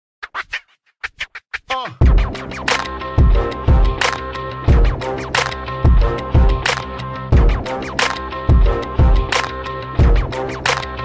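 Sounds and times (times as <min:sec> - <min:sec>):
turntable scratching: 0:00.2 - 0:04.2.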